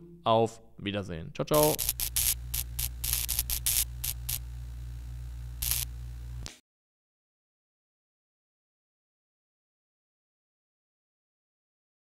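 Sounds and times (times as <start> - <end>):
low electrical hum: 1.5 - 6.5
crackling static bursts: 1.6 - 6.6.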